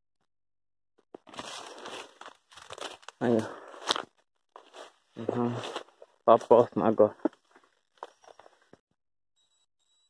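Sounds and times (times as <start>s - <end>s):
footsteps crackling through dry leaves: 1.3s - 4.0s
man speaking: 3.2s - 3.6s, 5.2s - 5.7s, 6.3s - 7.2s.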